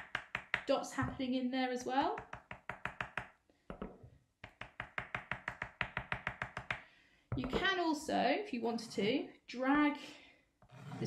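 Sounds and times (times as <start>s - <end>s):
skewer tapping on paper: 0.0s - 0.7s, 2.1s - 6.9s.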